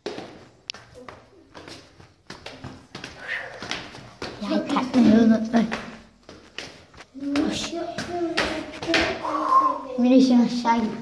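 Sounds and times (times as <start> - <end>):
faint child's voice: 7.2 - 10.8.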